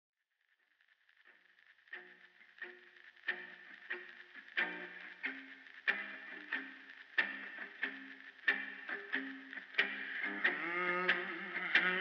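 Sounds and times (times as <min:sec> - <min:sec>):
faint hiss: 0:00.6 - 0:12.0
plucked guitar notes: 0:01.9 - 0:12.0.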